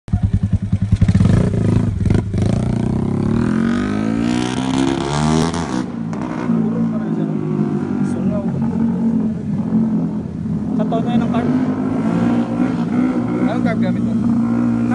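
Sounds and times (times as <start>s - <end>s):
motorcycle engine revving: 0.1s - 14.9s.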